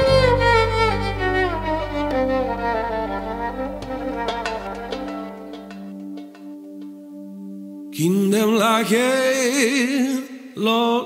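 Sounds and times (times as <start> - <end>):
low bass drone: 0.0 - 5.6
solo violin melody: 0.0 - 6.9
plucked notes: 0.0 - 7.9.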